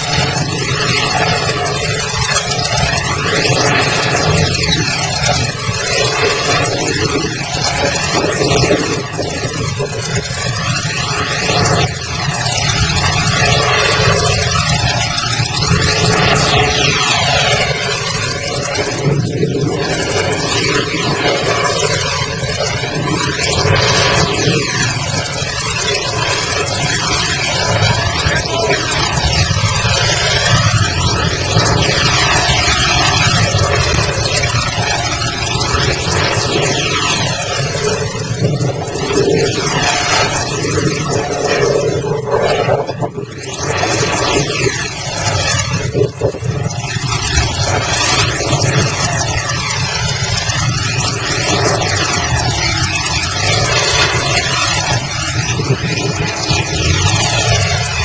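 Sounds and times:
heavy machinery engine noise: 0:00.0 - 0:58.0.

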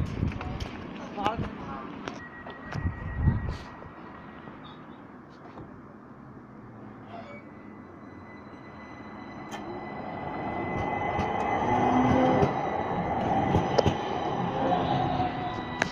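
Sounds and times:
electric tram drive whining: 0:00.0 - 0:15.9
wheels rumbling on rails: 0:00.0 - 0:15.9.

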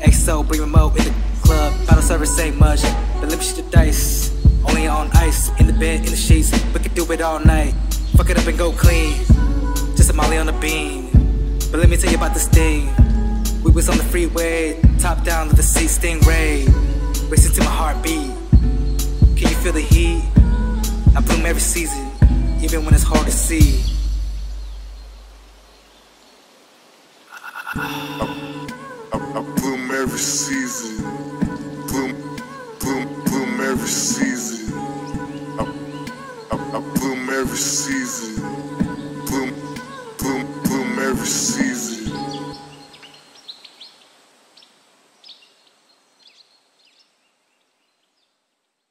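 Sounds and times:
faint hiss: 0:00.0 - 0:48.9
high bird-like chirps: 0:03.2 - 0:10.8, 0:15.4 - 0:20.4, 0:21.2 - 0:26.4.

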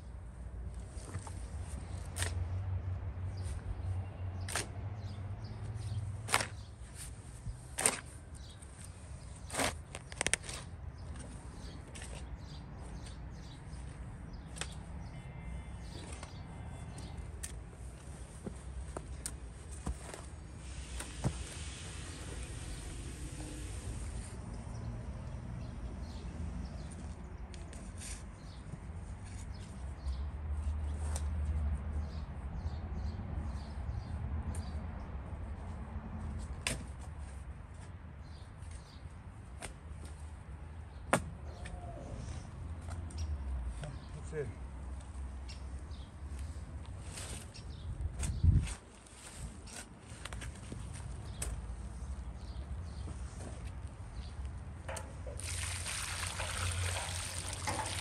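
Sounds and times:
shovel digging into soil: 0:07.7 - 0:08.2
soil crunching underfoot: 0:55.3 - 0:58.0.

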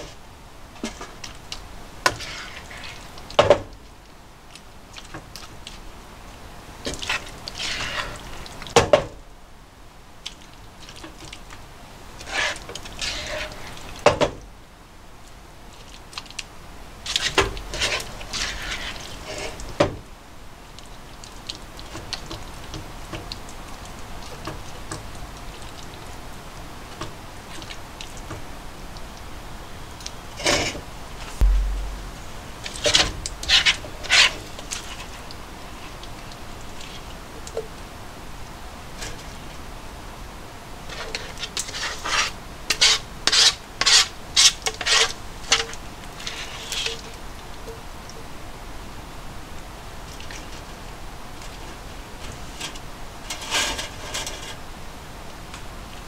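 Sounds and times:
spatula scraping sauce in frying pan: 0:02.0 - 0:03.1, 0:06.9 - 0:08.6, 0:12.2 - 0:13.9, 0:17.1 - 0:19.6, 0:40.9 - 0:46.9.

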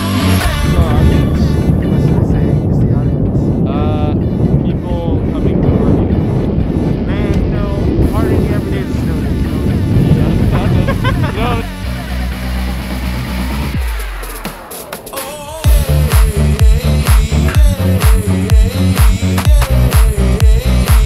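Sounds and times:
wind rumbling on microphone: 0:00.0 - 0:13.9
background music: 0:00.0 - 0:21.0.

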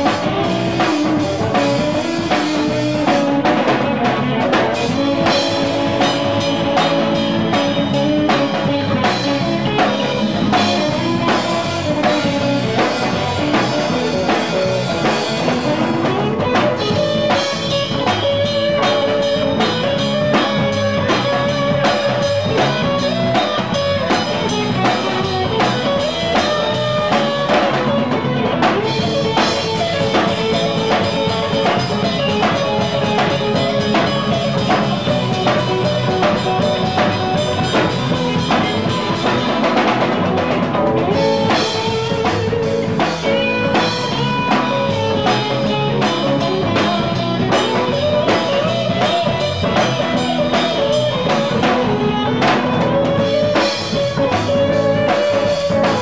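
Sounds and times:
bass guitar: 0:00.0 - 0:56.0
drum kit beat: 0:00.0 - 0:56.0
electric guitars: 0:00.0 - 0:56.0.

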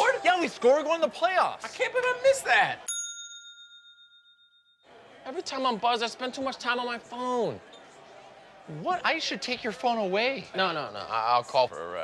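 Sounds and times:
bright bell-like chime: 0:02.9 - 0:04.9.

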